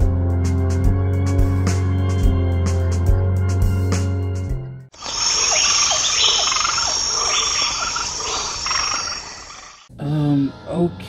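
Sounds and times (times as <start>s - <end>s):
crickets trilling: 5.0s - 9.9s
frogs calling: 5.0s - 9.9s.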